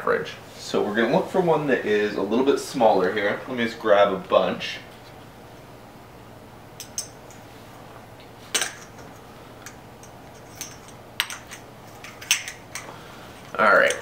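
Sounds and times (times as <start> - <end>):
small metal parts clinking: 8.6 - 12.9.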